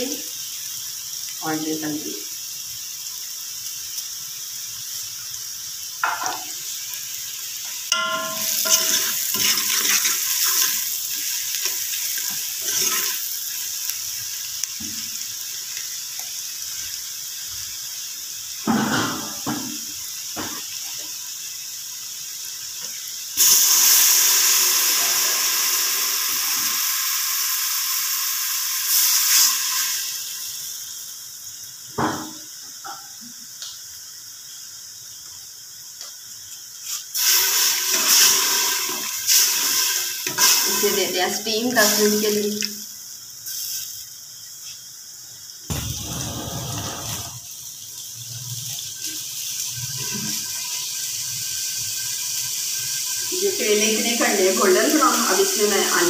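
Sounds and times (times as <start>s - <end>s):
onions sizzling in hot oil: 0.0s - 56.0s
water poured into hot pot: 7.0s - 14.5s, 23.4s - 30.8s, 37.1s - 41.0s, 45.7s - 56.0s
spoon scraping pot: 7.9s - 10.7s.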